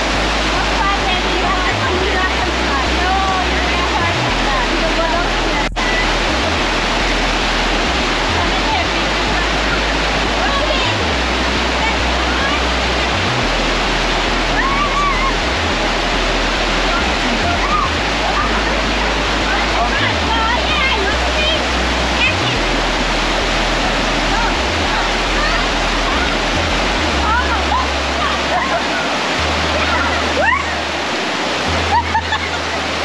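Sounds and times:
voices calling out: 0:00.0 - 0:33.0
waterfall rushing: 0:00.0 - 0:33.0.

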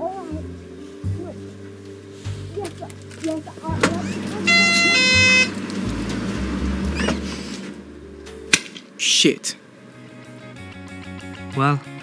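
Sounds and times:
background music: 0:00.0 - 0:12.0
two-note shop-door chime: 0:04.4 - 0:05.6.

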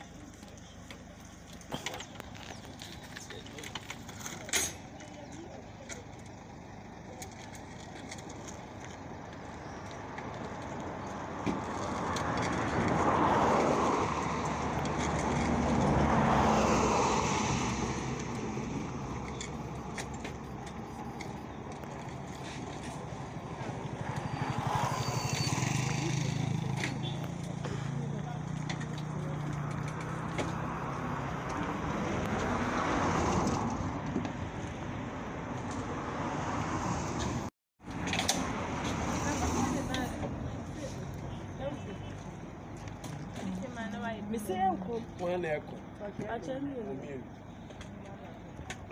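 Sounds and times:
road vehicles passing: 0:00.0 - 0:48.9.

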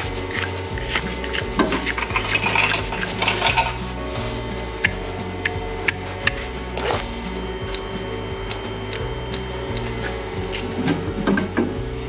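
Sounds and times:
knife scraping horn: 0:00.0 - 0:12.0.

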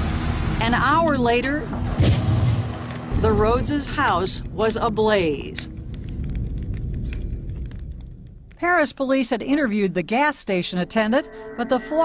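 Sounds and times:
flames rumbling: 0:00.0 - 0:08.8
fire crackling: 0:00.0 - 0:09.4.

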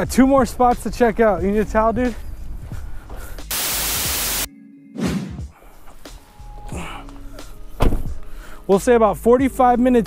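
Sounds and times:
static hiss burst: 0:03.5 - 0:04.5.

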